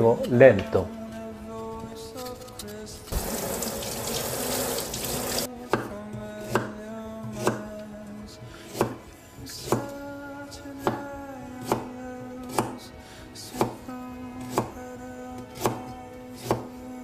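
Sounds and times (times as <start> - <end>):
soft background music: 0.0 - 17.0
water tap running: 3.1 - 5.5
knife chopping on wooden board: 5.7 - 6.8, 7.4 - 7.7, 8.7 - 9.0, 9.6 - 9.9, 11.6 - 12.8, 13.6 - 13.8, 15.6 - 15.8, 16.4 - 16.7.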